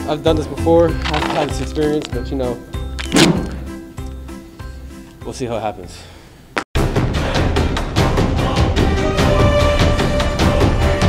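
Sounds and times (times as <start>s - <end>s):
background music sustained tones: 0.0s - 6.1s
loud thunk: 3.0s - 3.7s.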